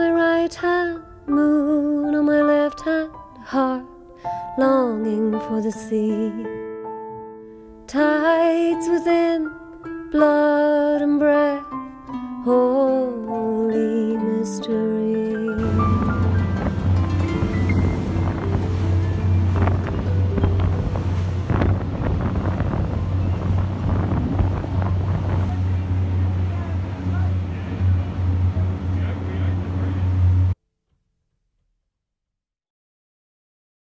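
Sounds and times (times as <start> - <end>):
boat engine drone: 15.4 - 30.6
wind buffeting microphone: 15.6 - 30.5.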